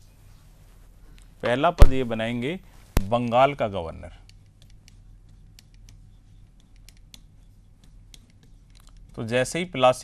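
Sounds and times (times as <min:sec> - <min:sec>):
low steady hum: 0:00.0 - 0:10.0
pen tapping and scratching on glass: 0:04.4 - 0:09.2.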